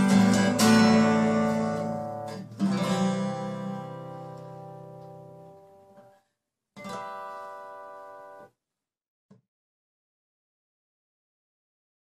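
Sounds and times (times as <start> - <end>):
acoustic guitar chord ringing: 0.0 - 6.0, 6.8 - 8.5.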